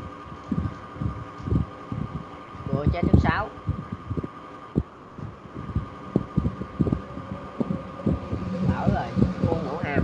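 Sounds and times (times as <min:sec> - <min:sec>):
thin electrical whine: 0:00.0 - 0:10.0.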